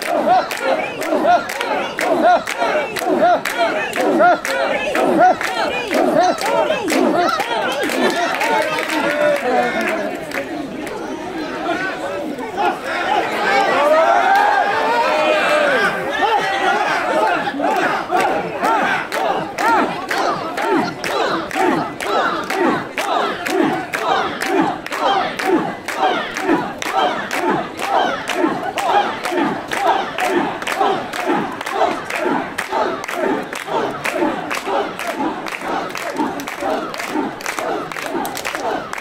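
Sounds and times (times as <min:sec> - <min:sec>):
crowd chanting in unison: 0:00.0 - 0:39.0.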